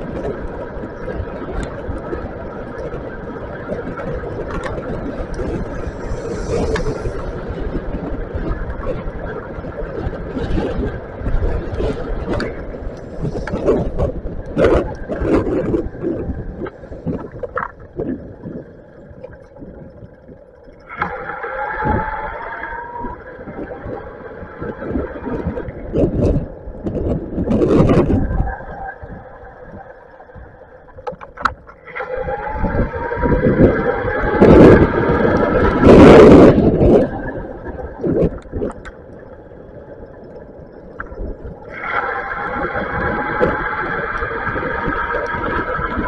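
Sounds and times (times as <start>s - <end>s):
wind rumble: 0.0s - 46.0s
electric bike motor whining: 20.9s - 23.5s, 41.7s - 46.0s.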